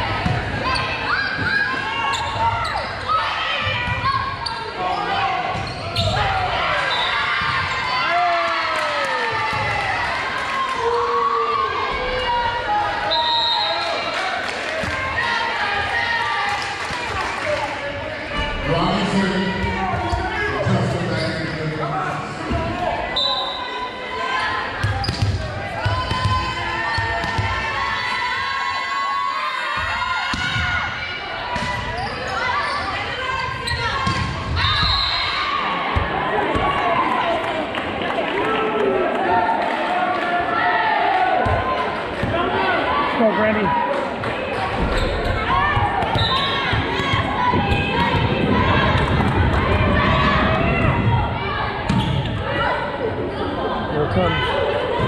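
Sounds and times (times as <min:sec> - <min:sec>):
voices of players and spectators: 0:00.0 - 0:55.0
volleyball hit and bouncing: 0:44.7 - 0:51.2.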